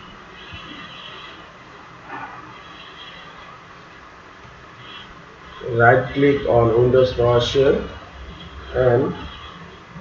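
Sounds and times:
room and microphone hiss: 0.0s - 10.0s.

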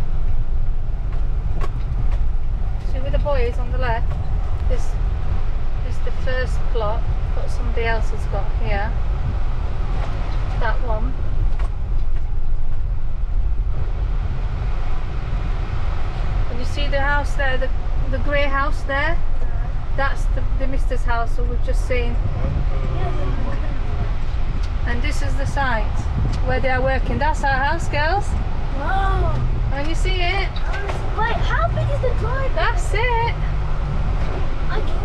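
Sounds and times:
car engine and tyre rumble: 0.0s - 35.0s.

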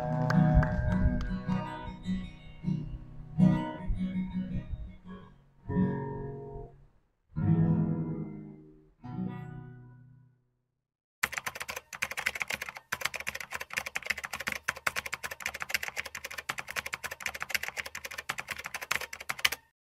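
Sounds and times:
acoustic guitar song: 0.5s - 6.8s
fast keyboard clicking: 11.2s - 19.7s.

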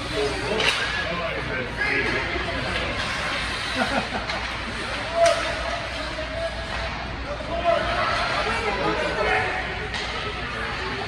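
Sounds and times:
hockey stick striking puck: 4.2s - 5.8s, 9.8s - 10.4s.

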